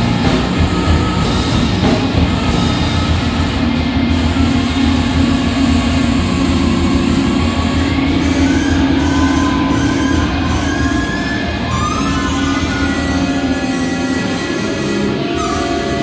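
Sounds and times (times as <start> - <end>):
distorted guitar and bass drone: 0.0 - 16.0
saxophone held notes gliding upward: 0.0 - 16.0.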